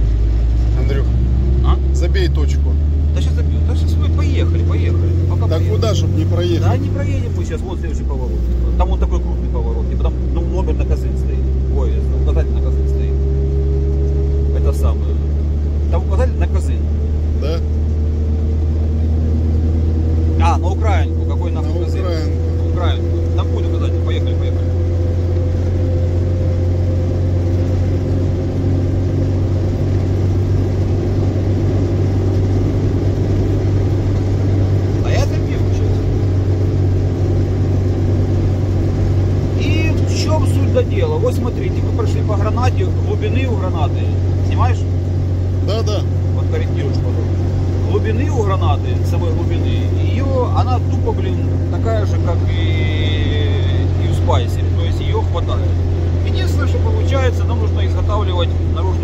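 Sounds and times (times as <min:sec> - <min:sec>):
rising whine: 0:00.0 - 0:59.0
vehicle engine and road rumble: 0:00.0 - 0:59.0.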